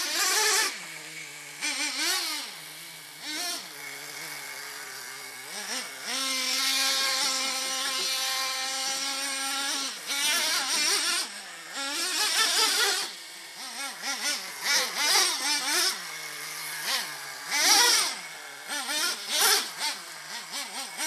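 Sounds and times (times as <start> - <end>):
small engine revving up and down: 0.0 - 21.0.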